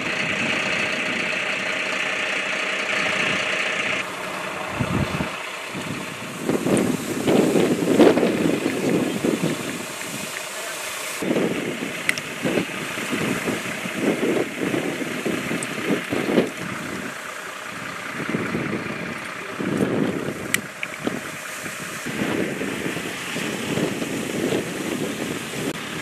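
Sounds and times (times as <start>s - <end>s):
idling vehicle engines: 0.0s - 26.0s
wind buffeting the microphone: 4.7s - 10.4s, 11.2s - 26.0s.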